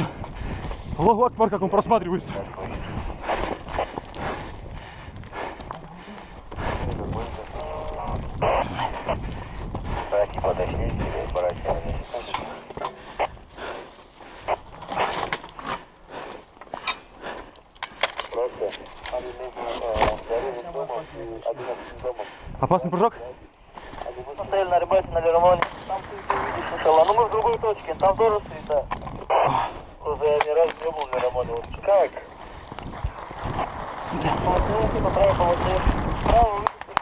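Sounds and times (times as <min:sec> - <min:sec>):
hurried footsteps on gravel: 0:00.0 - 0:25.6, 0:26.2 - 0:37.0
indistinct voices: 0:01.8 - 0:15.4.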